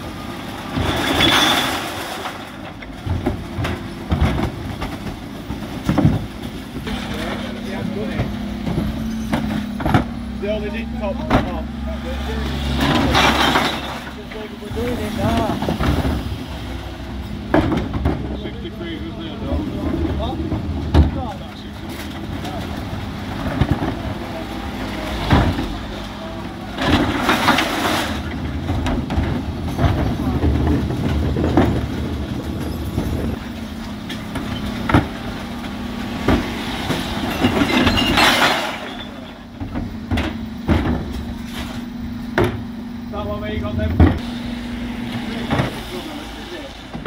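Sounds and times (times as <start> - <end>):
bin lift tipping: 0.0 - 47.0
rubbish clattering into hopper: 0.0 - 47.0
truck idling: 0.0 - 47.0.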